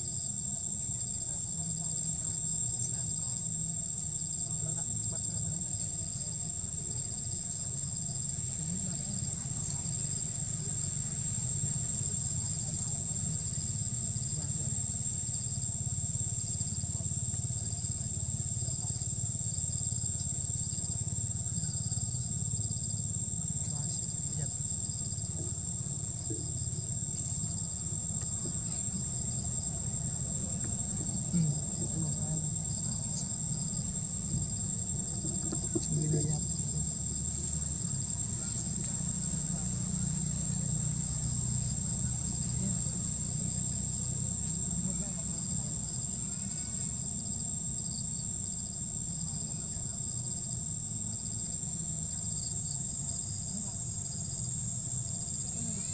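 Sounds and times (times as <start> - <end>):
low steady rumble: 0.0 - 46.4
high-pitched insect tone: 0.0 - 55.9
pulsing insect chirp: 0.0 - 55.9.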